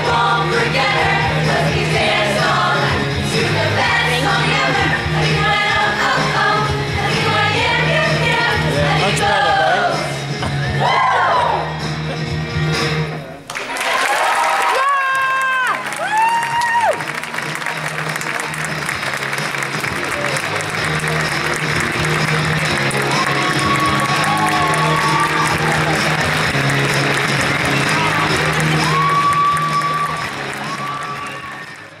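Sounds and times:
choir holding chord: 0.0 - 10.0
audience applauding and cheering: 13.4 - 32.0
high whoops: 13.9 - 17.1, 23.2 - 26.0, 28.7 - 31.9.

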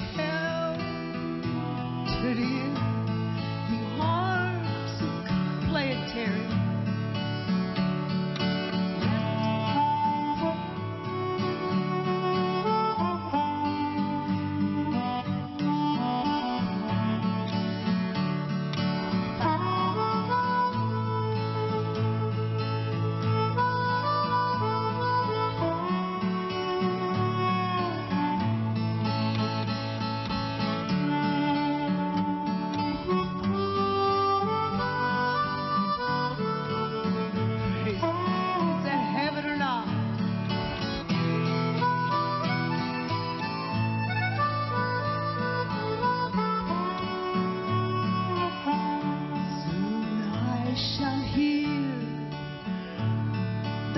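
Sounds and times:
harmonica melody: 0.0 - 53.9
strummed acoustic guitar: 0.0 - 53.9.

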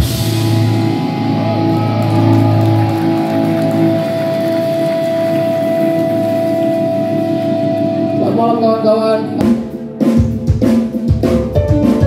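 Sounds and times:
electric guitars ringing chords: 0.0 - 10.0.

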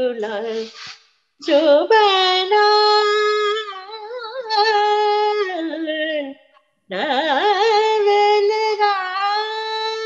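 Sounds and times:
woman singing unaccompanied: 0.0 - 0.8, 1.4 - 10.0.

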